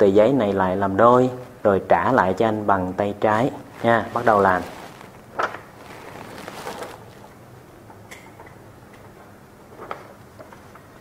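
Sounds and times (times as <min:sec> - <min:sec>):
paper crackling while folded: 0:03.4 - 0:07.4.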